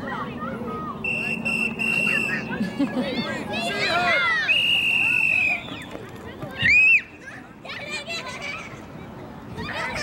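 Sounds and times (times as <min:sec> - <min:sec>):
children shouting and calling out: 0:01.9 - 0:05.6, 0:06.3 - 0:10.0.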